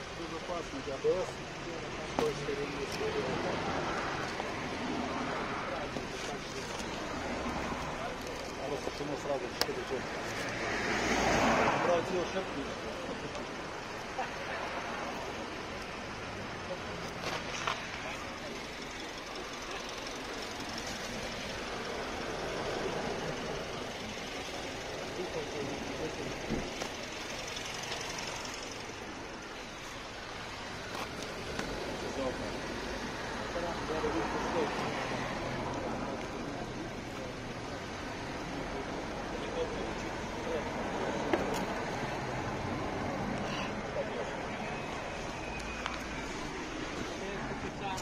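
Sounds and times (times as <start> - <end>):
indistinct voices talking: 0.0 - 48.0
outdoor background noise: 0.0 - 48.0.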